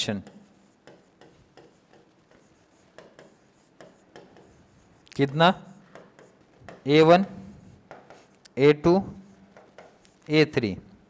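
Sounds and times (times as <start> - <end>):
stylus scratching on touchscreen: 0.0 - 8.4, 9.1 - 10.3.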